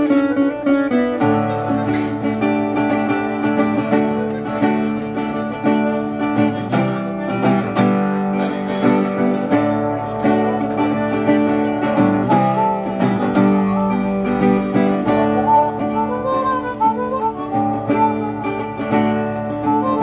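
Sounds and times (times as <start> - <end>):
guitar strumming: 0.0 - 20.0
harmonica bending notes: 0.0 - 20.0.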